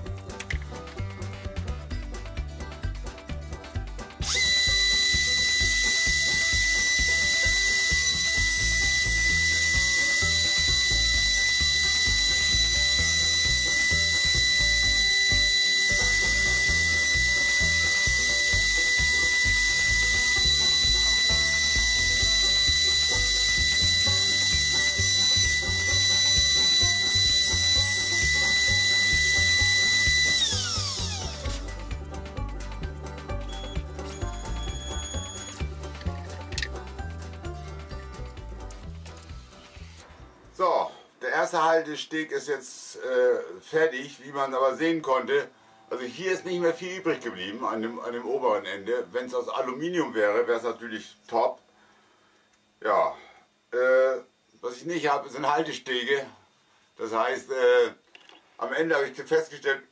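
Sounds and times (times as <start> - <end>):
router spindle whine: 4.2 - 31.8, 33.4 - 35.7
cutting hiss: 4.2 - 31.9.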